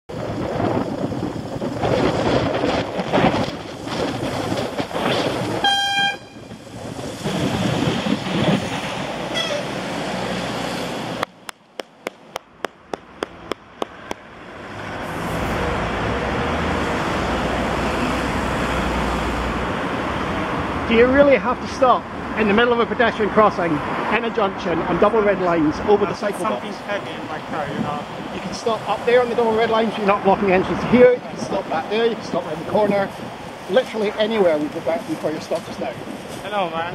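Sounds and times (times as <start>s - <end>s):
traffic noise: 0.1s - 36.9s
wind: 0.1s - 36.9s
horn toot: 5.6s - 6.6s, 9.3s - 9.9s.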